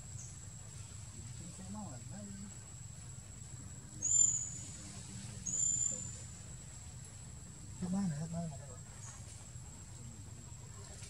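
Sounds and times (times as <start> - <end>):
whistled animal calls: 4.0 - 4.7.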